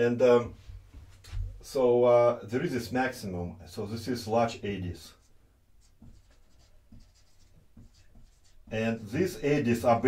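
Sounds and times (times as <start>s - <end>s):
marker scratching on whiteboard: 5.1s - 9.7s.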